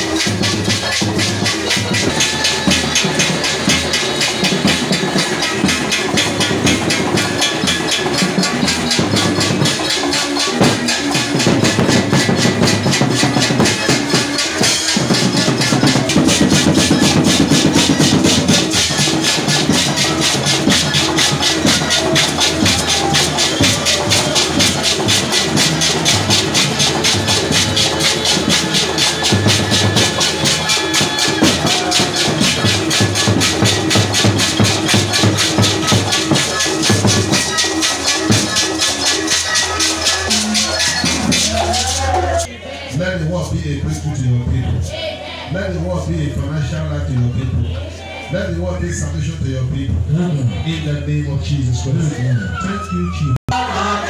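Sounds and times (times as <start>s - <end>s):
live church praise music: 0.0s - 44.7s, 45.5s - 54.0s
choir clapping: 16.4s - 42.4s.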